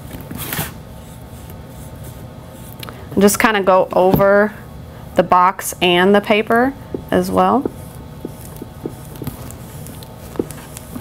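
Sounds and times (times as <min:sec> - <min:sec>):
ink pad brushing on paper: 0:01.0 - 0:02.7, 0:06.9 - 0:11.0.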